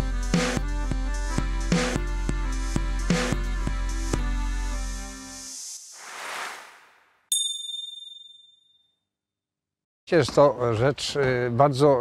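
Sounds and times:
high bell-like ding: 7.3 - 8.9.

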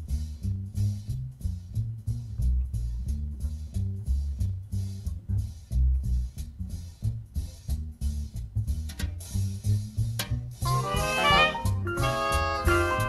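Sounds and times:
drums on cymbals: 0.0 - 13.0
upright bass walking: 0.0 - 13.0.

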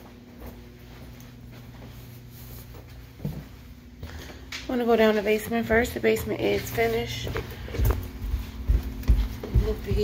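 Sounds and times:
soft footsteps: 0.0 - 10.0
steady low hum: 0.0 - 10.0.

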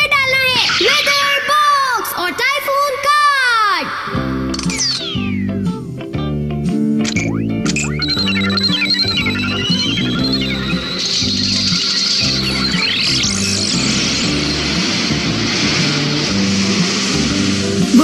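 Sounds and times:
rising whistling glides: 0.3 - 2.2, 7.3 - 18.0
cartoon background music: 4.1 - 18.0
rushing wind-like hiss: 13.5 - 18.0.

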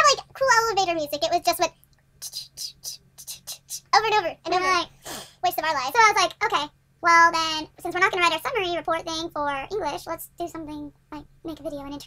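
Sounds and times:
woman whispering hissing noises: 2.2 - 3.9.

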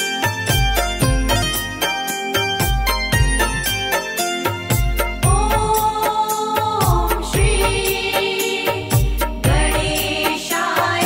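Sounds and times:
sustained melody lines: 0.0 - 11.0
deep bass beat: 4.7 - 5.8, 6.8 - 8.0, 8.9 - 10.1.

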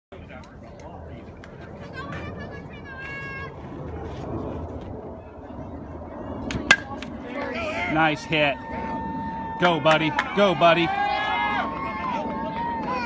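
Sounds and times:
murmur of spectators: 5.1 - 13.0
people shouting: 7.4 - 13.0.

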